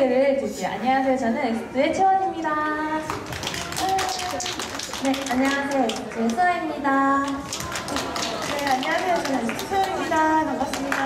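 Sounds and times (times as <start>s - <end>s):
crowd clapping: 3.1s - 6.4s, 7.2s - 11.0s.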